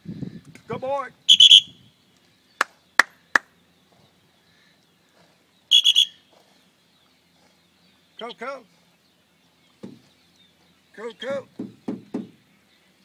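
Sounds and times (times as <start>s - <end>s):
shrill fluttering whistle blast: 1.3s - 1.8s, 5.7s - 6.2s.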